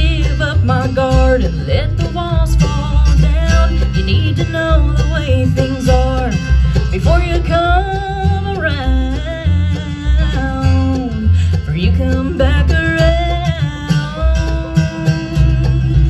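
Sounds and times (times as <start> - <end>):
acoustic guitar: 0.0 - 16.0
banjo: 0.0 - 16.0
mandolin: 0.0 - 16.0
upright bass: 0.0 - 16.0.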